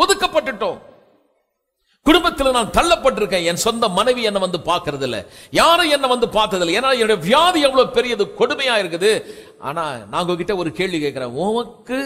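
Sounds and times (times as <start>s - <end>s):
man preaching: 0.0s - 1.0s, 2.0s - 12.0s.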